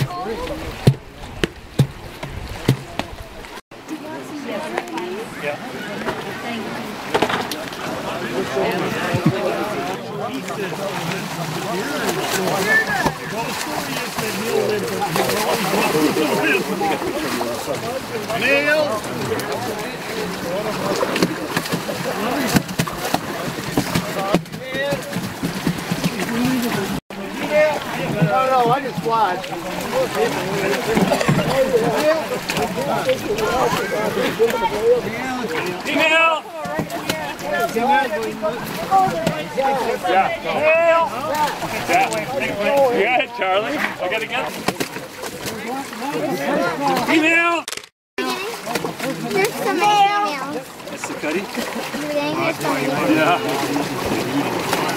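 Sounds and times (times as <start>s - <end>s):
river water rushing: 0.0s - 47.0s, 48.2s - 54.9s
people talking indistinctly: 0.0s - 54.9s.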